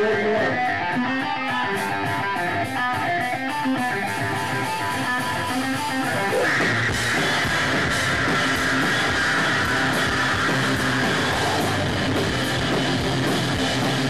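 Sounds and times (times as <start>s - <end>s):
metal band playing: 0.0s - 14.0s.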